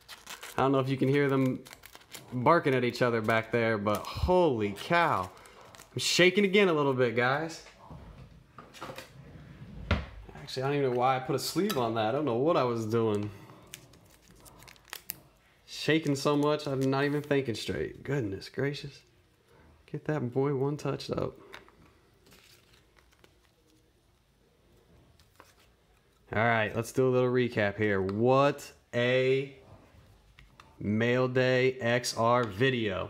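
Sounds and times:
trading cards rustling: 0:00.0 - 0:06.7, 0:10.4 - 0:15.4, 0:16.0 - 0:17.7, 0:21.2 - 0:24.0.

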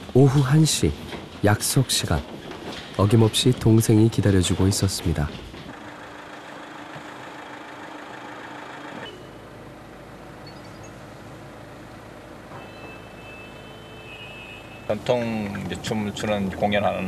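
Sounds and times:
car engine hum: 0:04.4 - 0:17.0
road and engine noise inside car: 0:05.7 - 0:13.3
faint high steady tone: 0:12.5 - 0:15.5.

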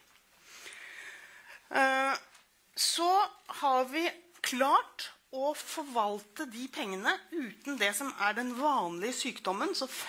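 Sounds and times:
woman breathing in: 0:00.4 - 0:01.7.

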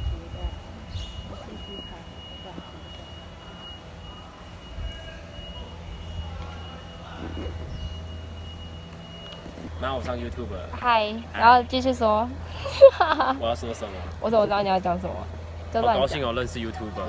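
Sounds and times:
faint distant voices: 0:00.0 - 0:08.9
steady low rumble: 0:00.0 - 0:17.0
thin steady high tone: 0:00.0 - 0:17.0.

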